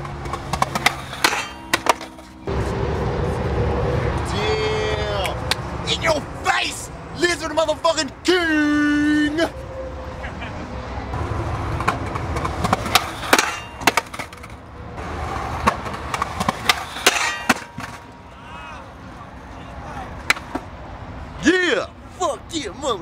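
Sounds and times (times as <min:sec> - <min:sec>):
skateboard wooden clacks: 0:00.0 - 0:02.3, 0:11.8 - 0:14.6
skateboard wheels rolling on concrete: 0:00.0 - 0:09.6, 0:10.2 - 0:23.0.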